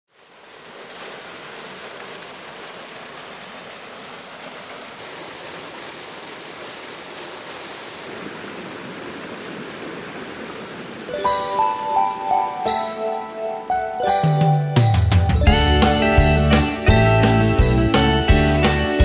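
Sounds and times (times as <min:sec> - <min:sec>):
stream pouring over small fall: 0:00.1 - 0:19.0.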